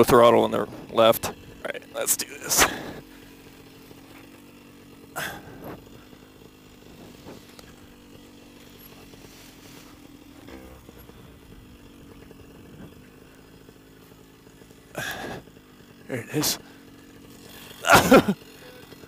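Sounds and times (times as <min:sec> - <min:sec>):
paramotor engine idling: 0:00.0 - 0:19.0.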